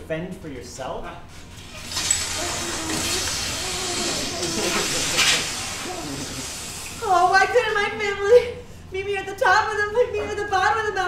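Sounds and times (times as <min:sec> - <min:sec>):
woman whimpering and sobbing: 0:02.4 - 0:07.8.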